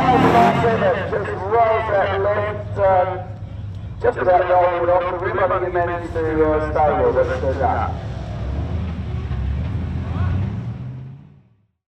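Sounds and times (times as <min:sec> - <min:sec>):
car engine idling rumble: 0:00.0 - 0:08.0.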